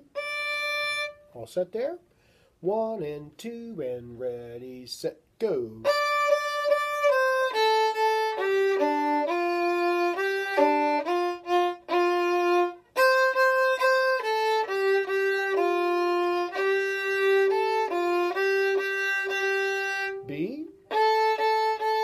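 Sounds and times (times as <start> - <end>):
solo violin melody: 0.0 - 1.4, 5.8 - 22.0.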